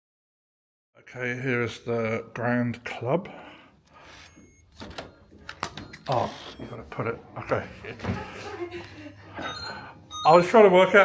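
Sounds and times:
wooden door opening: 4.7 - 6.6.

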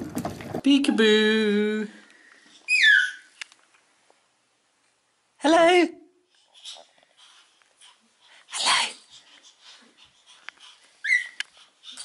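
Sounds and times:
baby squealing: 2.6 - 3.3, 11.0 - 12.0
baby shrieking: 2.7 - 3.3, 11.0 - 11.4.

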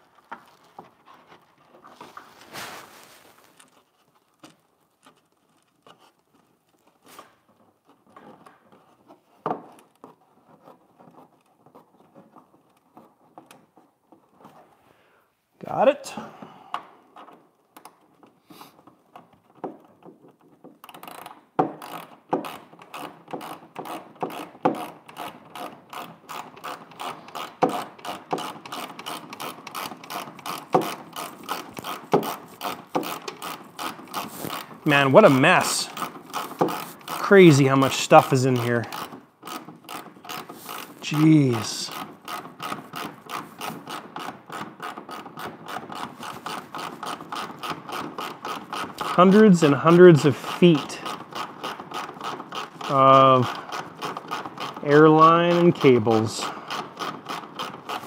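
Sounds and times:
handling noises: 0.0 - 14.8, 26.8 - 56.4
ratchet wrench clicking: 35.7 - 37.2.

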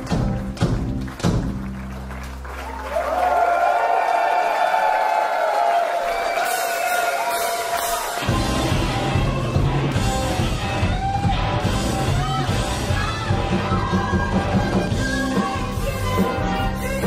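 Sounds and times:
blues-rock band playing: 0.0 - 2.3, 6.4 - 17.0
electric guitar: 6.4 - 17.0.

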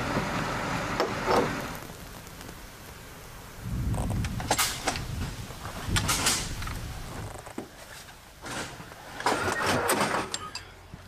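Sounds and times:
metal scraping and rattling: 4.0 - 10.8.

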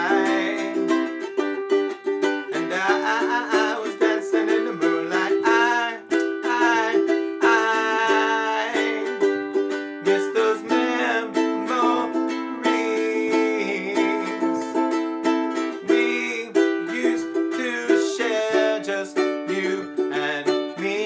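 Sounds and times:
man singing: 0.0 - 21.0
ukulele strumming chords: 0.0 - 21.0.

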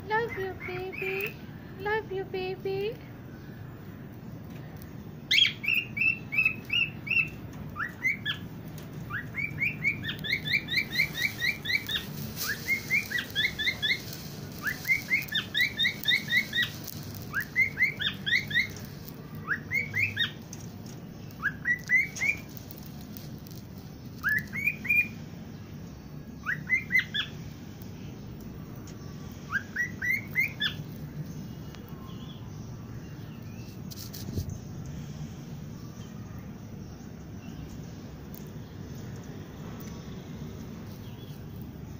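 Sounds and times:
parrots chirping: 0.2 - 1.4, 5.3 - 20.6, 21.2 - 25.2, 26.4 - 27.4, 29.4 - 31.0.

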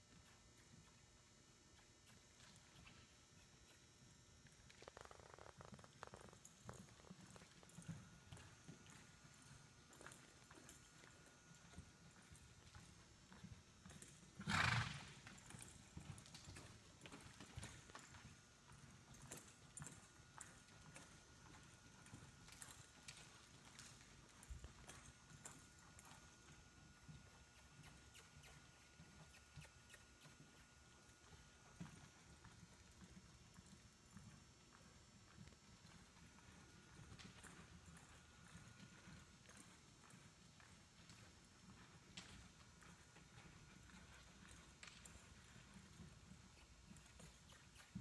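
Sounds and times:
horse hoofbeats on dirt: 0.0 - 48.0
horse snorting: 14.4 - 15.1.

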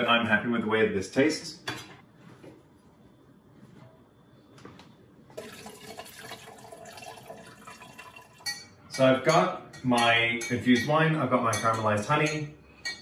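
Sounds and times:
liquid pouring through a colander: 5.4 - 8.5.

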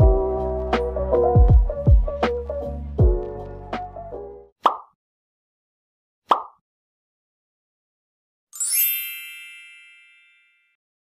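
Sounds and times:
bell-like chime: 8.6 - 10.8.

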